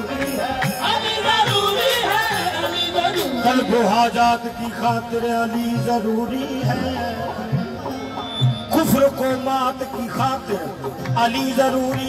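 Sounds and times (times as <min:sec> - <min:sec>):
man singing ornamented line: 0:00.0 - 0:12.0.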